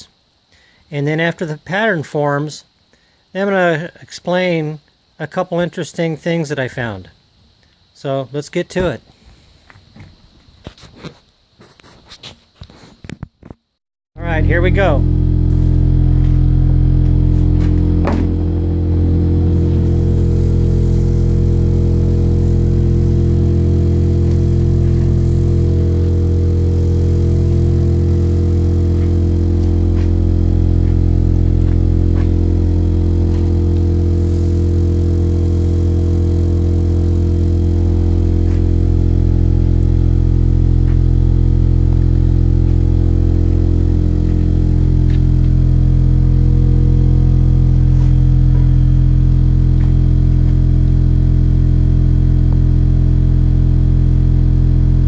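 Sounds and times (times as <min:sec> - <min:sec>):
loud low vibrating hum: 0:14.2 - 0:55.0.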